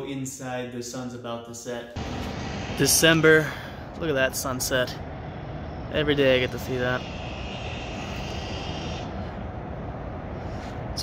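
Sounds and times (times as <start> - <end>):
faint high whine: 2.0 - 11.0
low outdoor rumble: 2.0 - 11.0.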